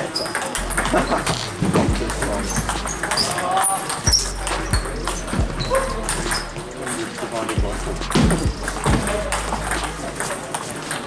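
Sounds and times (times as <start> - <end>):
table tennis ball knocking: 0.0 - 11.0.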